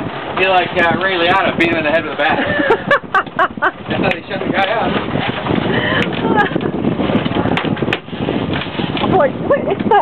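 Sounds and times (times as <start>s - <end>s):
outboard motors running: 0.0s - 10.0s.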